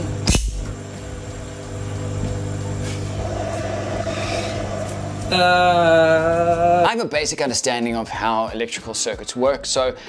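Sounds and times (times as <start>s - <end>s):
electrical buzzing hum: 0.0s - 7.5s.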